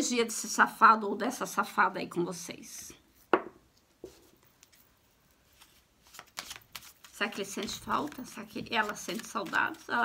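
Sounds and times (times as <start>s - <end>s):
soft knock: 3.3s - 3.6s
cards being handled: 5.4s - 10.0s.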